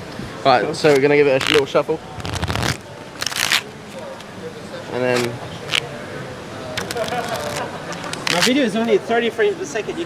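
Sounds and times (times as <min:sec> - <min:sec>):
playing cards riffle-shuffled: 0:01.0 - 0:01.6, 0:02.2 - 0:03.7, 0:06.8 - 0:08.6.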